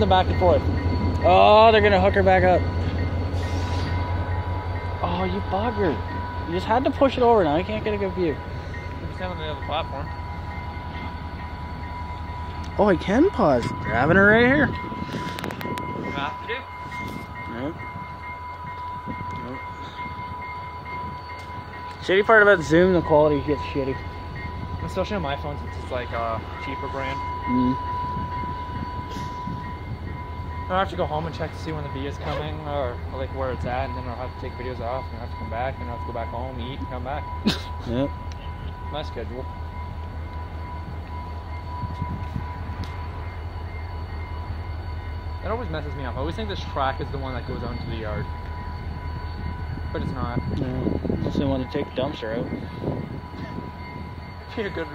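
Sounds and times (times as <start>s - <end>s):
diesel locomotive idling: 0.0s - 54.9s
thin steady whine: 0.0s - 54.9s.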